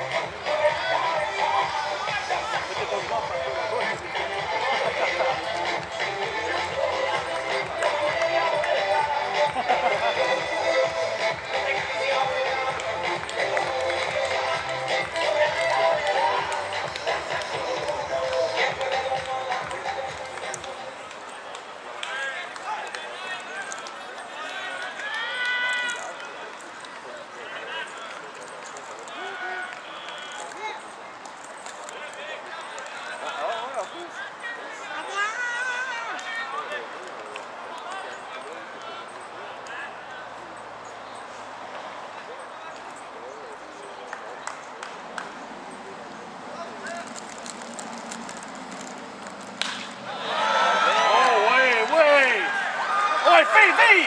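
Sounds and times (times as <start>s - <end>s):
crowd chatter: 0.0s - 54.0s
bat cracking ball: 49.4s - 50.1s.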